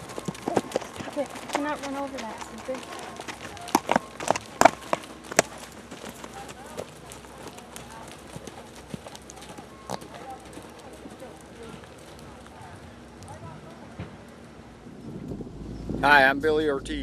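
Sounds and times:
horse hooves clopping on dirt: 0.0s - 14.5s
faint voices: 0.0s - 14.7s.

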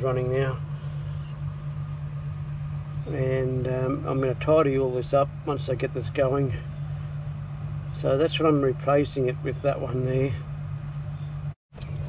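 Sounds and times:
air conditioner humming: 0.0s - 11.6s.

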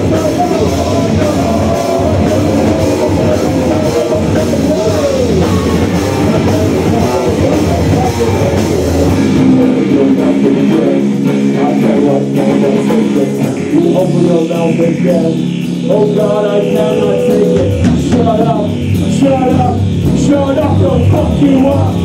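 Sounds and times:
distorted electric guitar: 0.0s - 22.0s
drum kit: 0.0s - 22.0s
live metal band playing: 0.0s - 22.0s.

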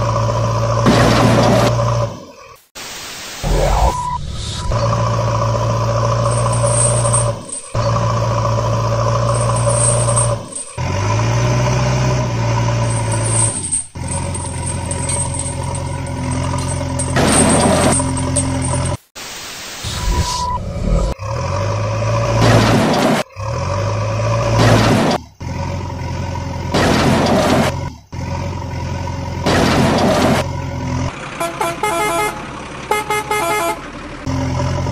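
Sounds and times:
truck engine drone: 0.0s - 19.1s, 19.9s - 34.9s.

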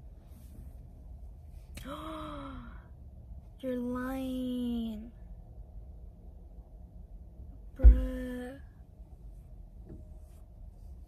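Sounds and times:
woman sighing: 1.8s - 2.9s.

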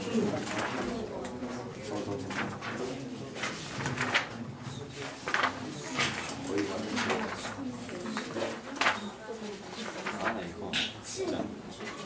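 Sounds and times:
students talking in murmur: 0.0s - 12.0s.

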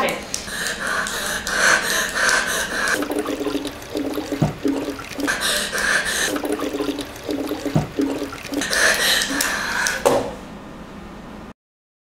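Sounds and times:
water cooler gurgling: 0.6s - 10.1s.

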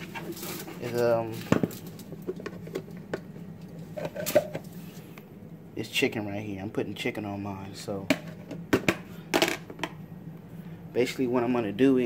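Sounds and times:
clicks and knocks of containers: 0.0s - 4.7s
steady low hum: 0.0s - 12.0s.

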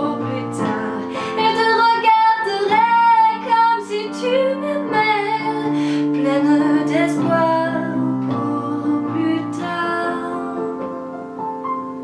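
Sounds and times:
woman singing love song: 0.0s - 11.2s
digital piano chords: 0.0s - 12.0s.

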